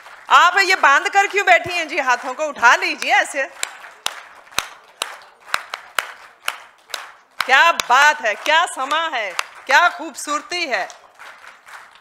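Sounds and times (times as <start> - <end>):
scattered hand claps in a hall: 0.0 - 12.0.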